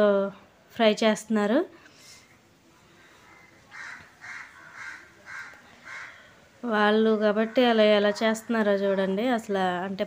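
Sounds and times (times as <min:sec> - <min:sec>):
crow cawing: 0:03.3 - 0:06.4, 0:07.3 - 0:08.6.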